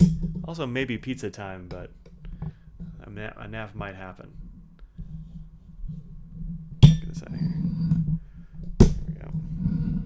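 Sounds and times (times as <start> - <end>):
microphone rubbing and rattling: 0.0 - 1.0, 1.6 - 10.0.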